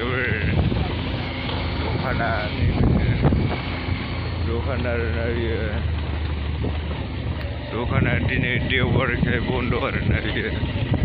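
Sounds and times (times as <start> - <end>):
low rumble of travel noise: 0.0 - 11.0.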